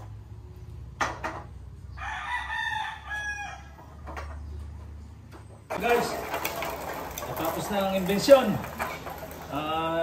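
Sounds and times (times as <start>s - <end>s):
rooster crowing: 1.9s - 4.0s.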